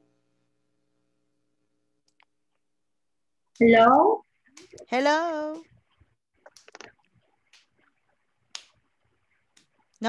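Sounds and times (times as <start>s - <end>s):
sharp hissy clicks: 6.5s - 6.9s.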